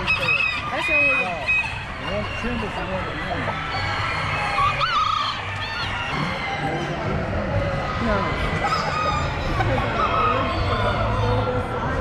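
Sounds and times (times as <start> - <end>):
short high poultry calls: 0.0 - 2.4, 3.4 - 7.0
poultry honking call: 0.0 - 7.0
steady low hall hum: 0.0 - 12.0.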